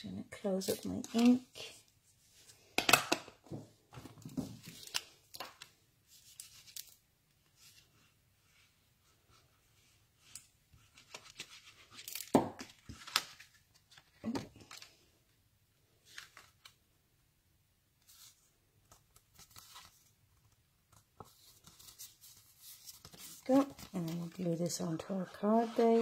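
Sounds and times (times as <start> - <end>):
paper rustling and sliding: 21.2 - 26.0.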